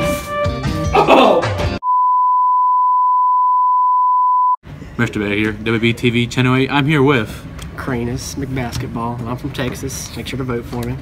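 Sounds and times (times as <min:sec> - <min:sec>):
steady sine-tone bleep: 0:01.8 - 0:04.6.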